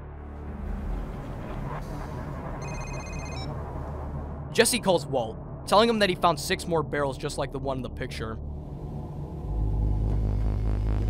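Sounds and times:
low steady rumble: 0:00.1 - 0:11.0
phone electronic ringtone: 0:02.6 - 0:03.5.

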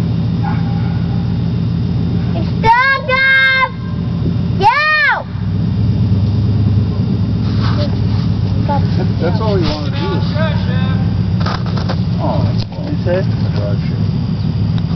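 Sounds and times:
truck engine running at low revs: 0:00.0 - 0:14.9.

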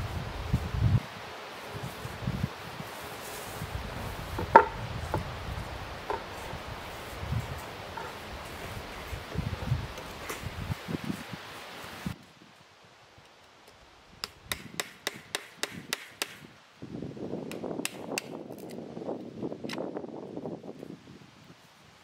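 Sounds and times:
sharp knocks: 0:04.4 - 0:05.2.

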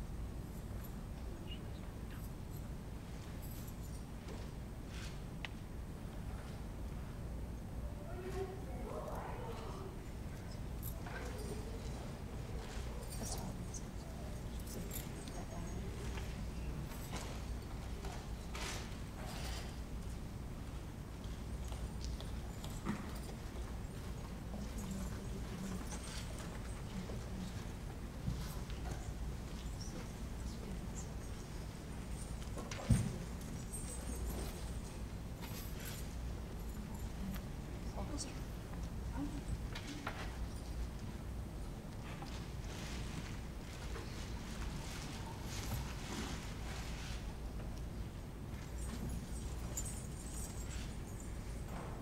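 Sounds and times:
soft movement sounds: 0:00.4 - 0:52.0.

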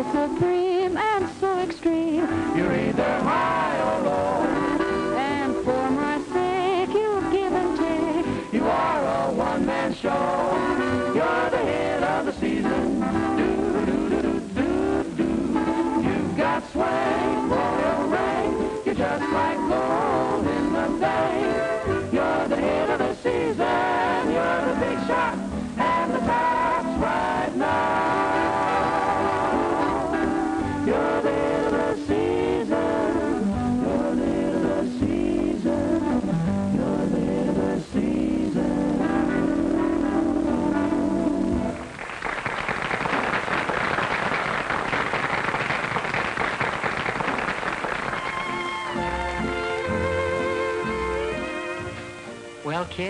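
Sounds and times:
song with instrumental accompaniment: 0:00.0 - 0:42.0, 0:46.8 - 0:53.0
applause: 0:41.8 - 0:48.8.

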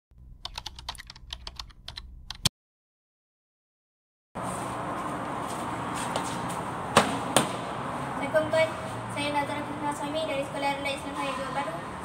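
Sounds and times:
keystroke clicks: 0:00.4 - 0:02.5.

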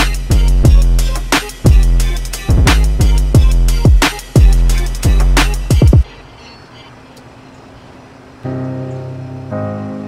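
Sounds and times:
background music: 0:00.0 - 0:06.1, 0:08.5 - 0:10.0.

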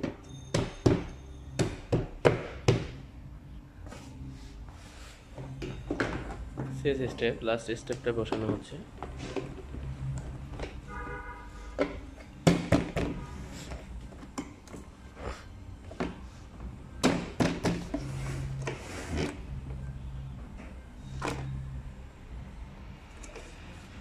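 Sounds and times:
hard plastic parts knocking: 0:07.9 - 0:09.8.

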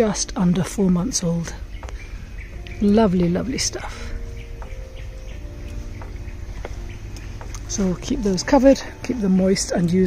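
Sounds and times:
birds chirping faintly: 0:00.0 - 0:10.0
low steady rumble: 0:00.0 - 0:10.0.

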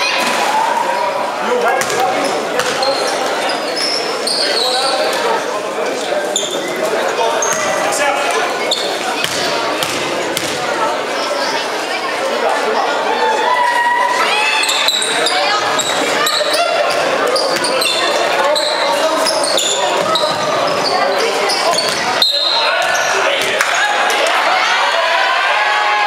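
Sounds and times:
voices calling and shouting: 0:00.0 - 0:26.0
shoes squeaking on court: 0:01.8 - 0:05.3, 0:06.2 - 0:10.6, 0:14.6 - 0:23.8
basketball bouncing: 0:09.1 - 0:10.6, 0:21.7 - 0:22.1.

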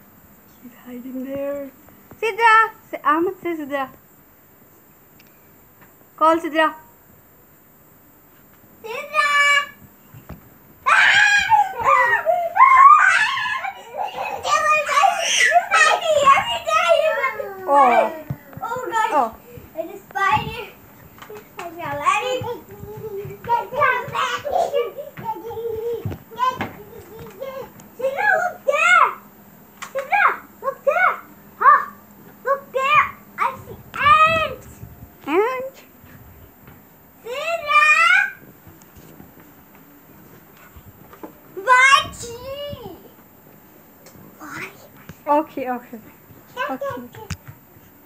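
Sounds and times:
children squealing and shrieking: 0:10.8 - 0:18.4.

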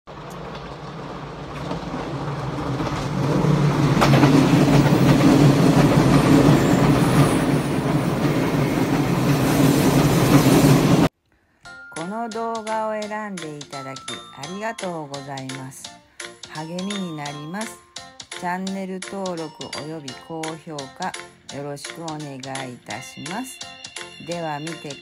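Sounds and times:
train running along track: 0:00.1 - 0:11.1, 0:16.4 - 0:25.0.

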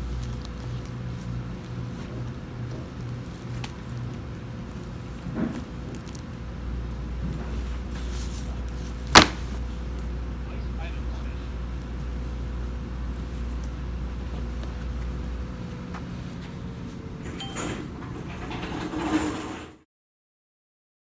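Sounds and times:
low room hum: 0:00.0 - 0:19.8
book knocking down on pad: 0:09.1 - 0:09.5.

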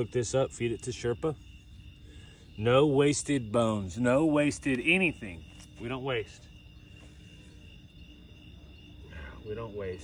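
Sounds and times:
crickets trilling: 0:00.0 - 0:10.0.

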